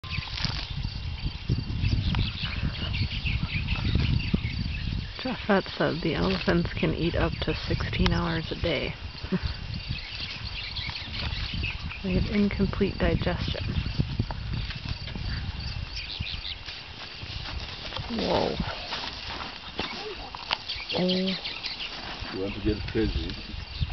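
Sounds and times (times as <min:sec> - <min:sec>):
birds chirping: 0:00.0 - 0:23.9
insects chirping: 0:00.0 - 0:23.9.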